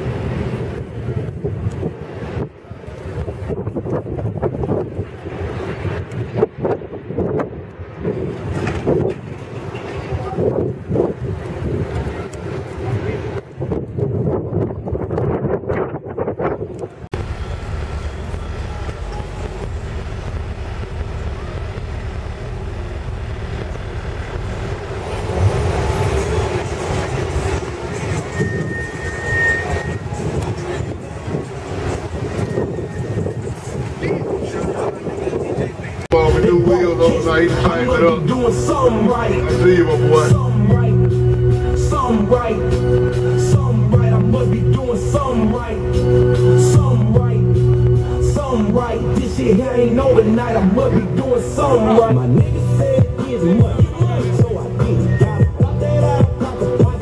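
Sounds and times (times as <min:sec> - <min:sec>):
vehicle rumble: 0:00.0 - 0:57.0
wind on microphone: 0:00.0 - 0:57.0
voices in background: 0:32.5 - 0:41.1.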